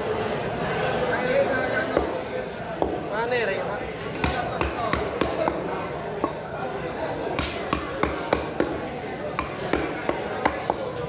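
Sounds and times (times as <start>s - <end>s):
background chatter: 0.0s - 11.0s
knife chopping onto wooden block: 7.4s - 8.8s, 9.4s - 11.0s.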